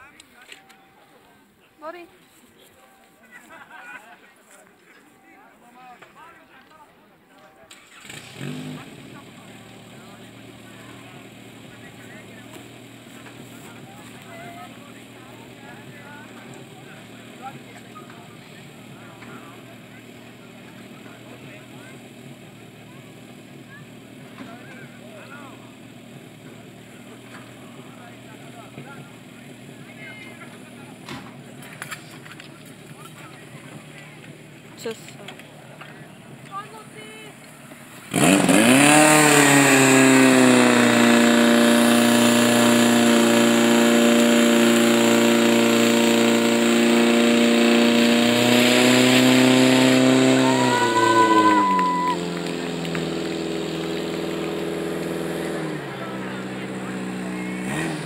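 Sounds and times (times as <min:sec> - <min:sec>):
fire pump engine running: 0:07.7 - 0:58.0
voices and shouts: 0:49.0 - 0:53.4.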